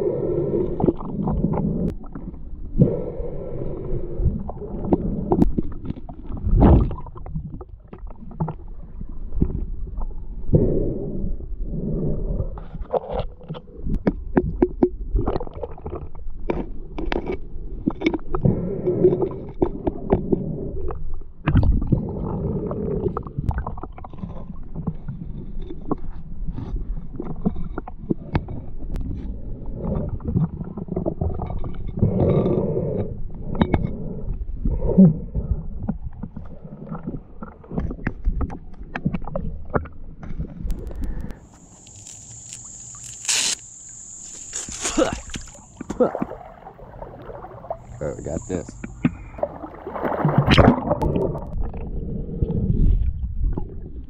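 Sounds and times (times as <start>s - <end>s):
muffled underwater water gurgling: 0.0s - 16.4s, 17.1s - 41.4s, 45.0s - 54.0s
water splashes: 40.7s - 51.8s.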